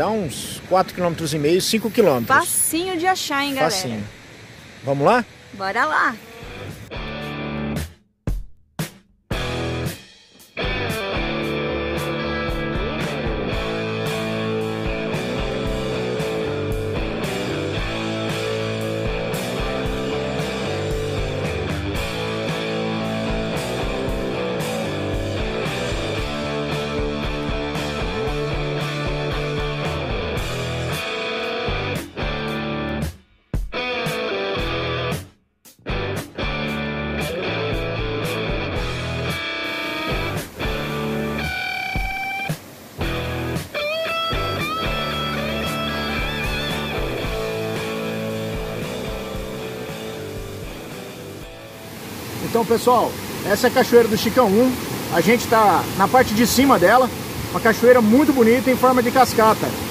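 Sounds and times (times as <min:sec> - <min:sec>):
music with steady beat: 0:06.5 - 0:51.8.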